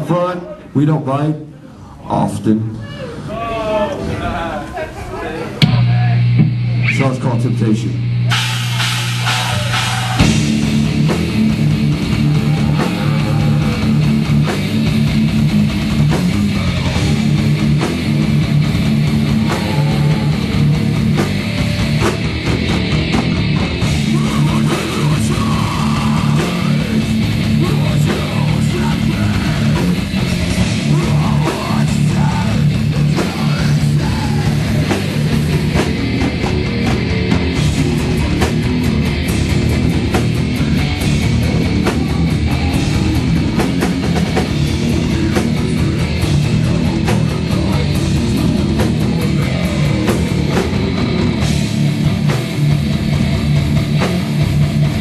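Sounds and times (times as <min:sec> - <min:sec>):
drum and cymbal hits: 0:05.6 - 0:07.2, 0:07.9 - 0:55.0
distorted electric guitar riff: 0:05.6 - 0:55.0
thrash metal band playing live: 0:05.6 - 0:55.0
sharp drum hits: 0:08.3 - 0:11.4.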